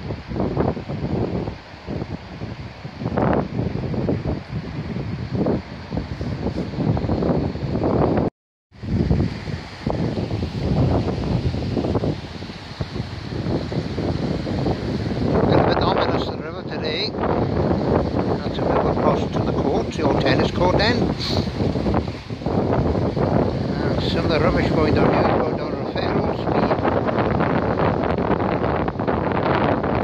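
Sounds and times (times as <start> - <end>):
river rushing: 0.0 - 30.0
wind buffeting microphone: 0.0 - 30.0.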